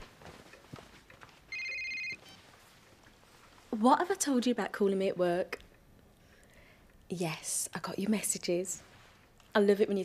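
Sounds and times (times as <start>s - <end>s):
phone ringtone trilling: 1.5s - 2.4s.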